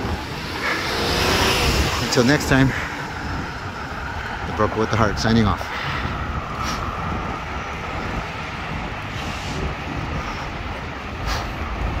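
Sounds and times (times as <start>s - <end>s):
road and traffic rumble: 0.0s - 12.0s.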